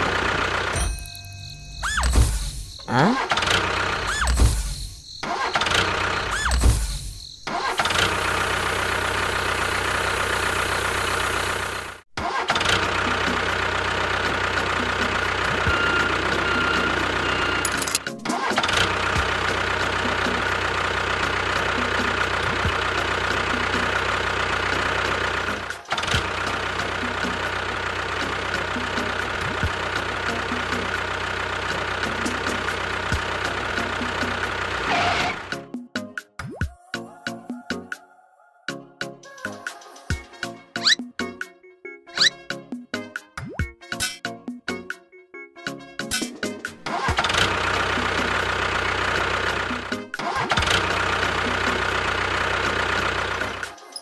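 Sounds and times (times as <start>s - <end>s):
tractor engine starting and running: 0.0s - 35.8s, 42.2s - 42.4s, 46.0s - 54.0s.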